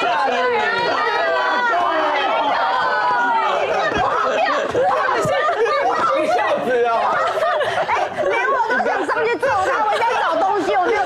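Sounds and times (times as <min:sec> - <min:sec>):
several people talking: 0:00.0 - 0:11.0.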